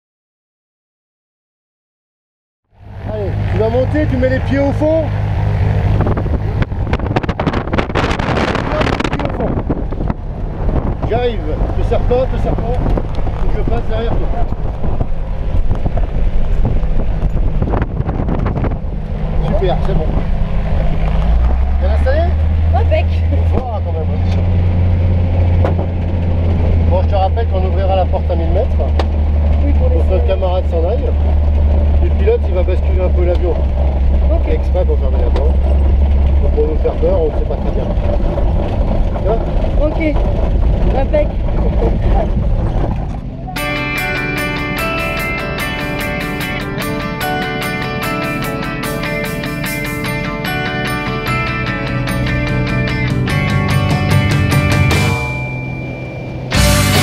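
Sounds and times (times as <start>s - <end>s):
propeller engine running: 2.7s - 57.0s
wind buffeting microphone: 2.9s - 23.8s, 32.9s - 43.6s
voices talking: 26.9s - 42.5s.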